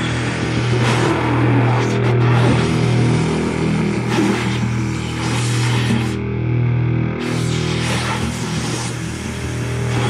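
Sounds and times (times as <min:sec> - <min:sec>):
distorted electric guitar: 0:00.0 - 0:10.0.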